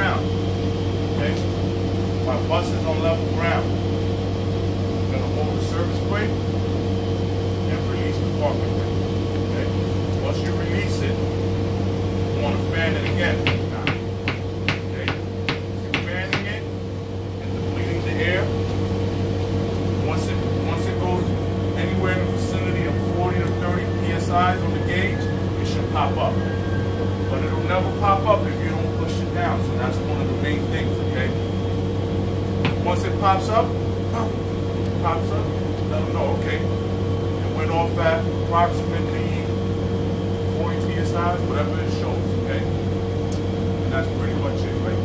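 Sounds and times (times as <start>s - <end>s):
bus machinery humming: 0.0s - 45.0s.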